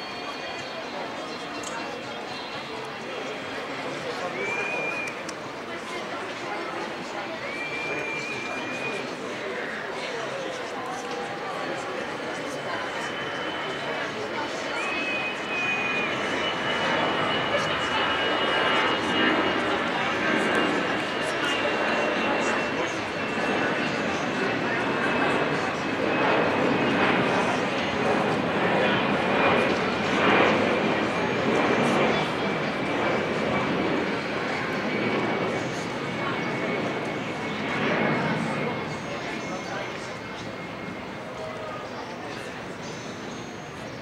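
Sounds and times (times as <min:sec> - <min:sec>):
spectators chattering: 0:00.0 - 0:44.0.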